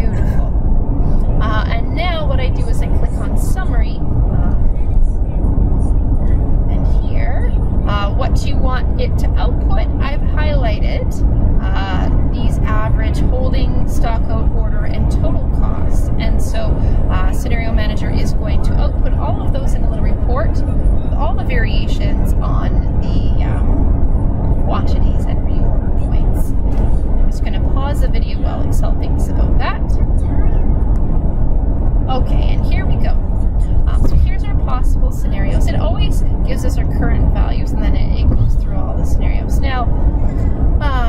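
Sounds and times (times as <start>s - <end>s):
indistinct voices: 0.0s - 41.0s
loud steady low rumble: 0.0s - 41.0s.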